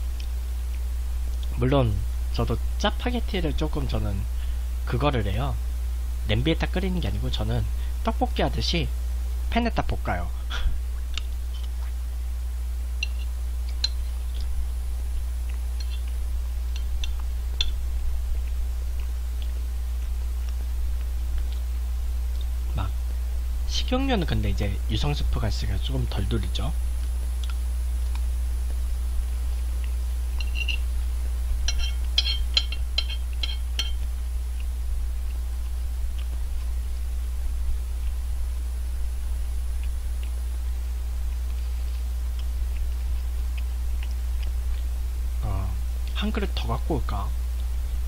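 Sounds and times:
low electrical hum: 0.0 - 48.0
spoon clinking on a plate: 30.4 - 30.8, 31.7 - 34.0.

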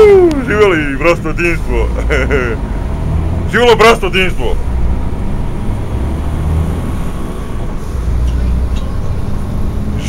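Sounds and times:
bus engine and road rumble: 0.0 - 10.0.

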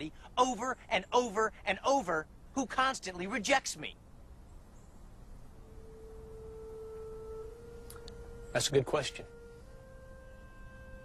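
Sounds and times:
faint higher notes: 4.8 - 11.0
soft held note: 5.6 - 11.0.

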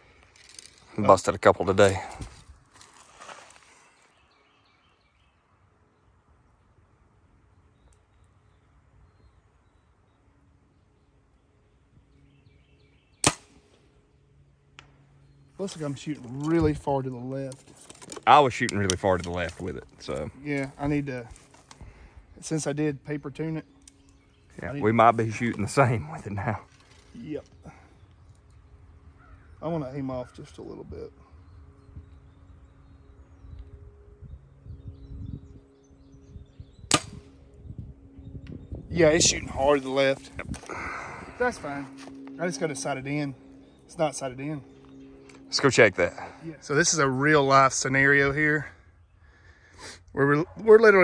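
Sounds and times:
bow string crack: 13.2 - 13.8, 36.9 - 37.4
bow string release crack: 36.9 - 37.3.

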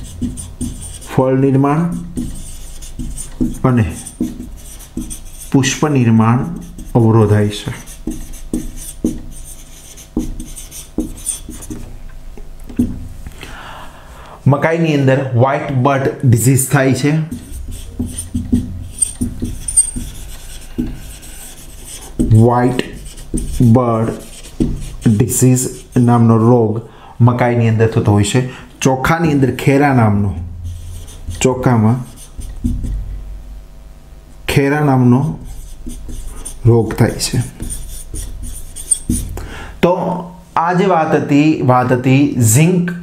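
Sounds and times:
marker writing on whiteboard: 0.0 - 12.0, 16.8 - 26.3, 30.4 - 33.0, 35.2 - 39.4
man speaking: 1.1 - 2.1, 3.5 - 4.2, 5.5 - 7.9, 14.4 - 17.4, 22.2 - 24.4, 25.0 - 30.6, 31.3 - 32.2, 36.6 - 37.7.

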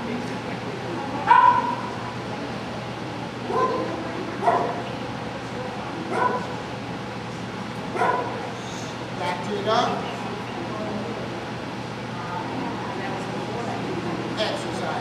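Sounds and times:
dog barking and yipping: 1.3 - 1.8, 6.1 - 6.5, 8.0 - 8.4.

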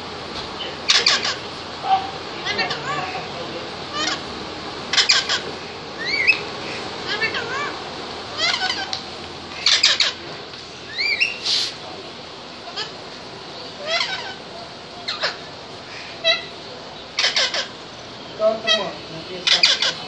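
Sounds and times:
steady background noise: 0.0 - 20.0
birds chirping and squawking: 0.6 - 20.0.

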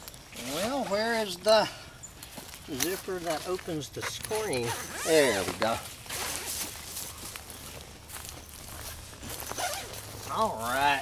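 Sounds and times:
zipper being opened: 4.6 - 6.6, 9.5 - 10.0
nylon fabric rustling: 8.7 - 10.4.

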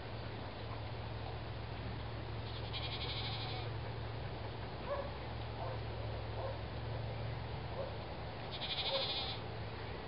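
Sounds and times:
goats bleating: 2.5 - 3.7, 8.5 - 9.4.

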